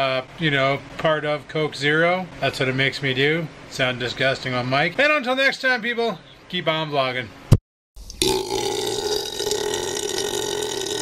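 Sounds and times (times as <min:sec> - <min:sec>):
man burping: 0:08.2 - 0:11.0.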